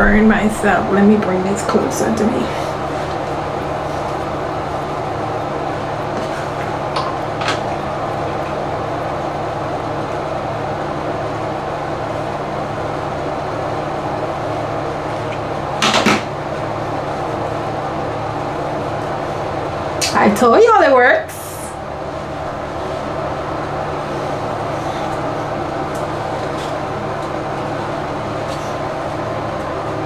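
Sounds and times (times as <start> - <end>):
ventilation hum: 0.0 - 30.0.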